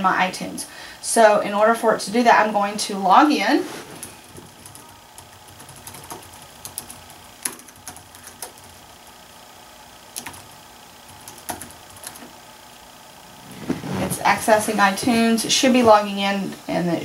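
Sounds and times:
laptop keyboard typing: 0:04.4 - 0:08.8, 0:10.1 - 0:12.3.

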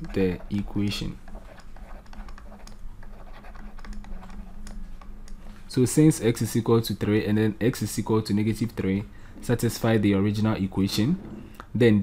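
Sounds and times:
stylus tapping on drawing tablet: 0:00.0 - 0:05.4
steady low hum: 0:00.0 - 0:12.0.

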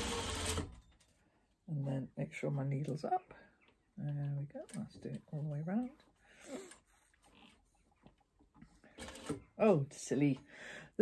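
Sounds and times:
sewing machine stitching: 0:00.0 - 0:00.8, 0:08.9 - 0:09.5.

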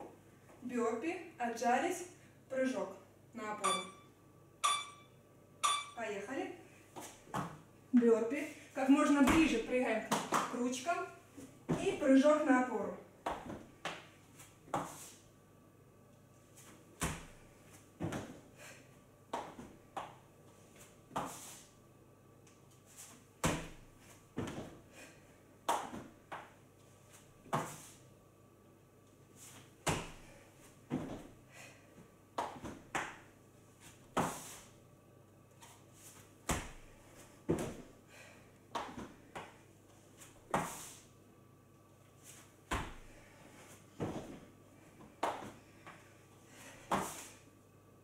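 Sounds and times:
hands and feet thudding on wooden floor: 0:09.1 - 0:10.5, 0:11.6 - 0:12.1, 0:18.0 - 0:18.4, 0:23.4 - 0:24.8, 0:30.9 - 0:31.3, 0:36.5 - 0:37.9, 0:42.3 - 0:43.1, 0:44.0 - 0:45.6.

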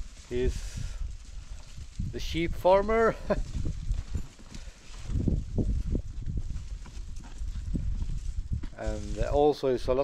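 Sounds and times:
rustling: 0:00.0 - 0:09.7
sheep hooves on dirt trail: 0:00.0 - 0:10.0.

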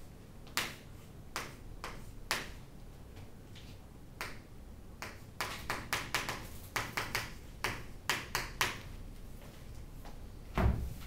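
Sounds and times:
chalk tapping on chalkboard: 0:00.5 - 0:02.6, 0:05.0 - 0:08.9.

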